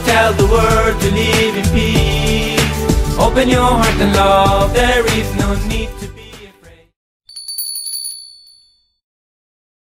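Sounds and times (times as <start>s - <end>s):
bright bell-like chime: 7.3s - 9.0s.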